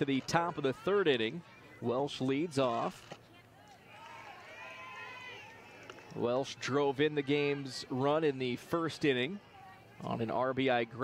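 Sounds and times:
distant high-pitched calls and shouts: 3.3 - 8.0.

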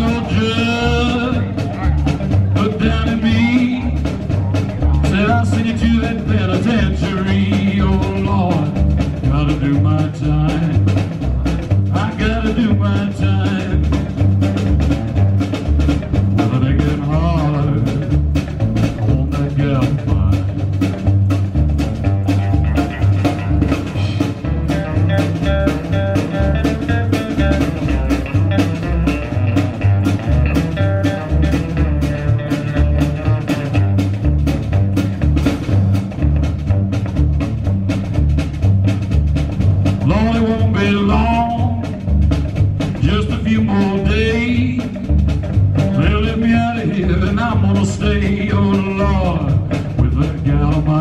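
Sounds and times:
electric guitar: 0.0 - 51.0
steady drum beat: 0.0 - 51.0
walking bass line: 0.0 - 51.0.

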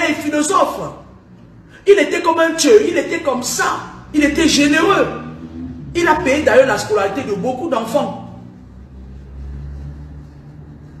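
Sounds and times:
low steady rumble: 0.0 - 11.0.

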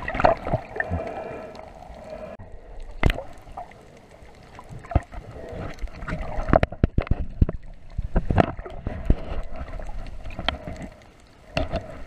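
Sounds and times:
muffled underwater water noise: 0.0 - 12.0.

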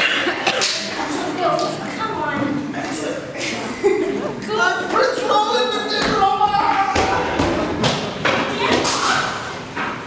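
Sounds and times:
indistinct voices: 0.0 - 9.6.

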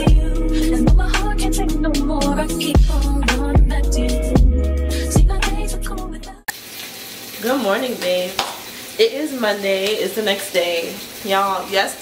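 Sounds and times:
food sizzling in a pan: 6.5 - 12.0
woman speaking: 7.4 - 8.4, 9.0 - 12.0.

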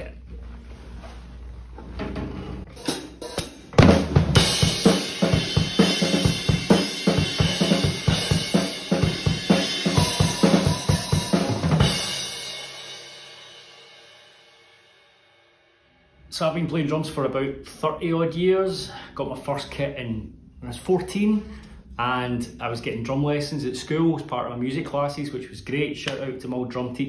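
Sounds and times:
drum kit beat: 2.7 - 13.9.

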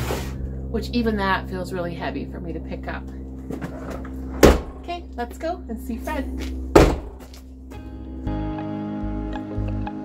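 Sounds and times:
car tailgate slamming: 4.3 - 4.8, 6.8 - 7.2.

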